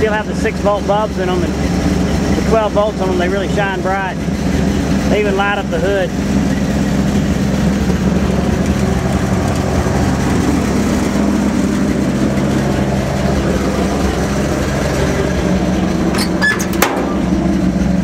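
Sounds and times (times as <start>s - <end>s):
man speaking: 0.0s - 1.6s, 2.3s - 4.2s, 5.1s - 6.2s
truck engine idling: 0.0s - 18.0s.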